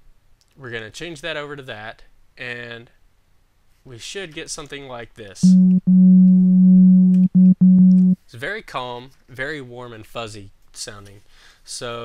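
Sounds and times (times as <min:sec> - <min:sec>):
low synth note: 0:05.4 - 0:08.2.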